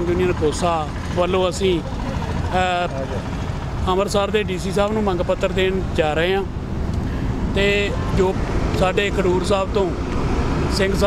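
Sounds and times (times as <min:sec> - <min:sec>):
idling bus and car engines: 0:00.0 - 0:11.0.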